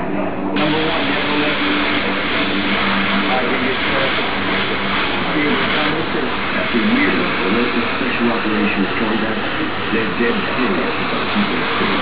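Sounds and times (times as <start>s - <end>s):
airbrush hissing: 0.6s - 12.0s.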